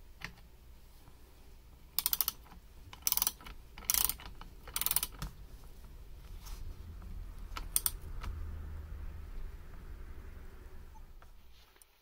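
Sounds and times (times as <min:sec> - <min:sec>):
socket wrench ratcheting: 0:02.0 - 0:05.2.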